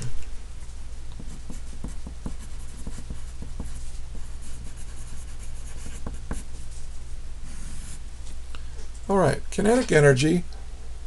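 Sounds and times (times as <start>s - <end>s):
pencil scratching on paper: 1.2s - 6.5s, 7.5s - 8.0s.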